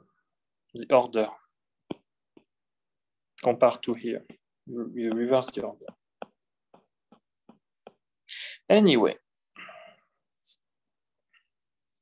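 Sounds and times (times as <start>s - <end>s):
stylus tapping glass screen: 1.8s - 2.7s, 4.2s - 8.2s.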